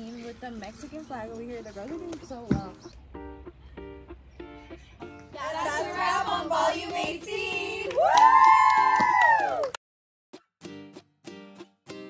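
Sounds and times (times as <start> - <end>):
high held voices: 5.3 - 8.1.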